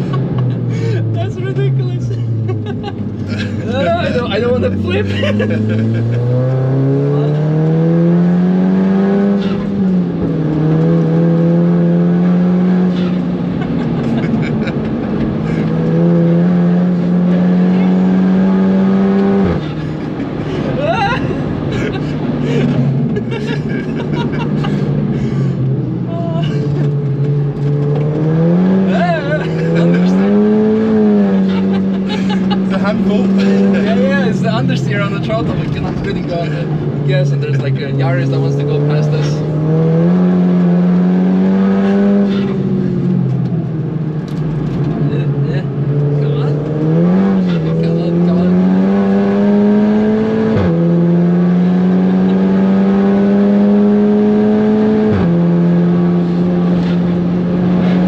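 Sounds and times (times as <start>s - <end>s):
car engine revving at full throttle: 0.0s - 58.0s.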